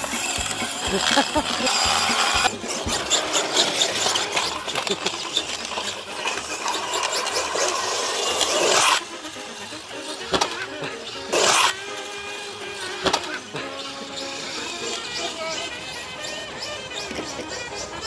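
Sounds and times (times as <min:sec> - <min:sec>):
rc truck tyres spinning: 0:00.0 - 0:18.0.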